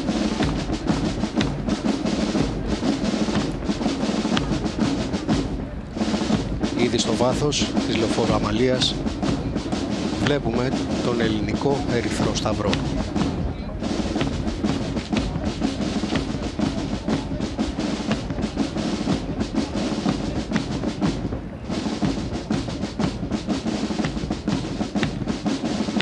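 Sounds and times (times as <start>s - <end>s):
marching band playing a march: 0.0s - 26.0s
snare and bass drums: 0.0s - 26.0s.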